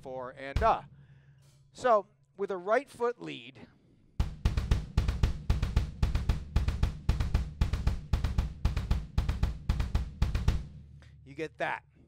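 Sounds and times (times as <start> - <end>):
double bass drums gallop rhythm: 0.5 - 0.9, 4.2 - 11.4.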